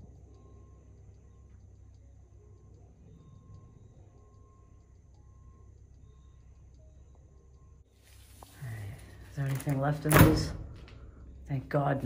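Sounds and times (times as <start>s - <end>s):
low steady rumble: 0.0s - 9.4s.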